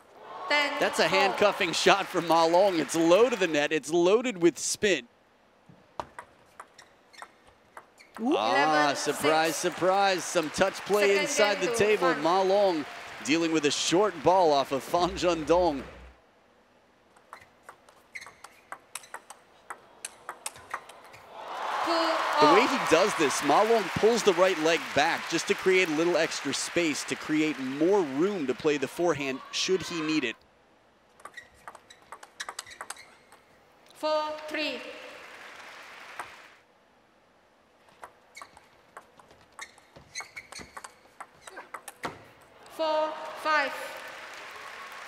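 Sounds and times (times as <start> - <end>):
crowd cheering: 0.0 - 3.8, 8.2 - 16.1, 21.2 - 30.4, 34.7 - 36.6, 42.6 - 45.0
applause: 0.8 - 3.8, 8.4 - 15.8, 21.4 - 29.2, 34.9 - 36.6, 43.1 - 45.0
shoe squeaks on floor: 6.6 - 8.2, 17.3 - 19.3, 31.3 - 33.4, 38.3 - 38.8, 39.4 - 41.7
table tennis ball clicking: 31.2 - 33.5, 38.0 - 42.1.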